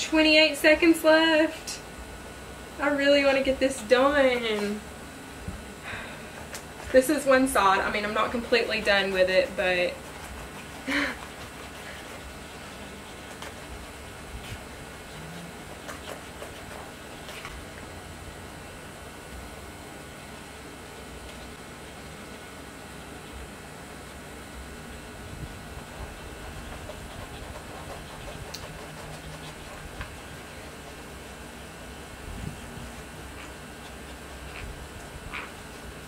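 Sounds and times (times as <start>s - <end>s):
low hum and hiss: 0.0s - 36.0s.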